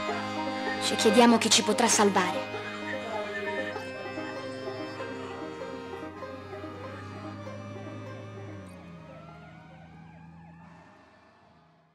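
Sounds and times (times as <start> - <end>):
siren in a fast yelp: 2.5 - 11.8.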